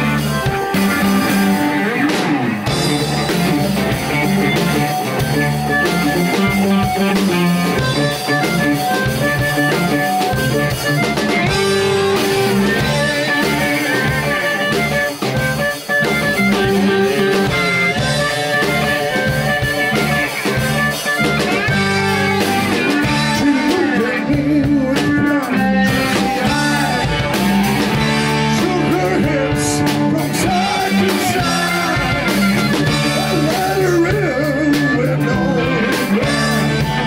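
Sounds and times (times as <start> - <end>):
amplified harmonica: 0.0 - 37.0
bass guitar: 0.0 - 37.0
drum kit: 0.0 - 37.0
electric guitar: 0.0 - 37.0.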